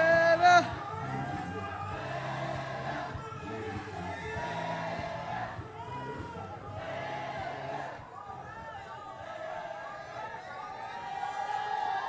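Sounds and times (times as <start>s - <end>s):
music with singing voice: 0.0s - 9.4s
crowd noise: 0.0s - 12.0s.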